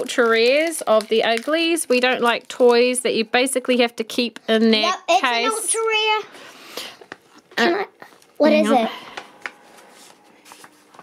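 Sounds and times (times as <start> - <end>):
plastic packaging clicks and rustles: 0.0 - 4.4.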